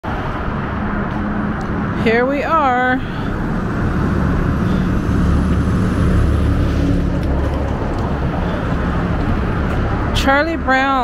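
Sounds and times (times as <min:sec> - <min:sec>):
low engine hum: 0:00.0 - 0:11.0
passing vehicles rushing: 0:00.0 - 0:11.0.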